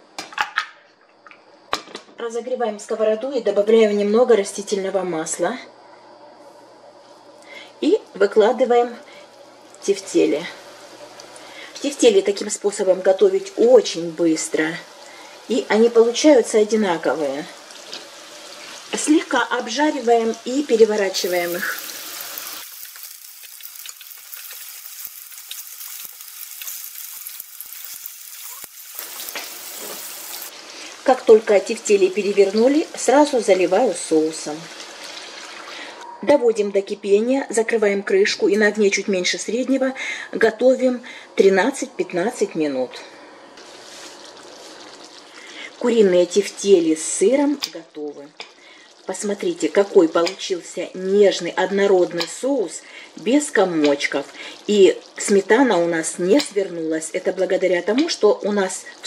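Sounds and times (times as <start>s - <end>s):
meatballs sizzling in oil: 8.2s - 36.0s, 43.6s - 59.0s.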